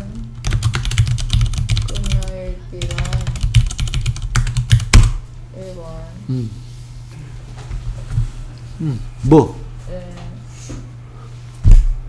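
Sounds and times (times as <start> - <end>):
typing on computer keyboard: 0.4 - 5.1.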